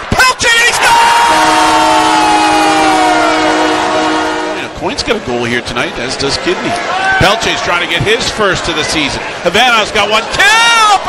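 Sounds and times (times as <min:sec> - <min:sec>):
crowd noise: 0:00.0 - 0:11.0
goal horn: 0:01.2 - 0:05.2.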